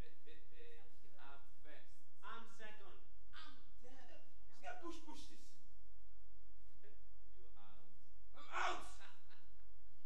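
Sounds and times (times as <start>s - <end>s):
faint speech: 8.4s - 9.1s.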